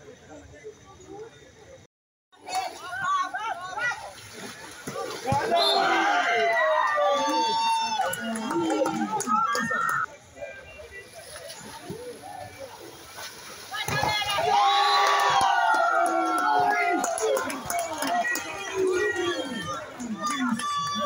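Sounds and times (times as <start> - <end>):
low murmur of crowd: 0.0 - 21.0
players and spectators cheering: 5.2 - 10.1, 13.8 - 21.0.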